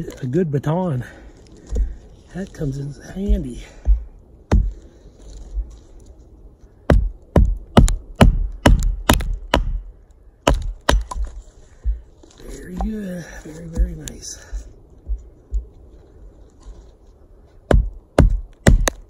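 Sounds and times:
man's voice: 12.4 - 14.6.

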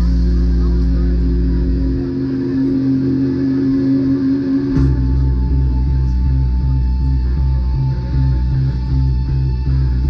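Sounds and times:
deep bass notes: 0.0 - 10.0
live rock band: 0.0 - 10.0
long held guitar note: 0.0 - 10.0
sharp drum hit: 4.7 - 7.1.

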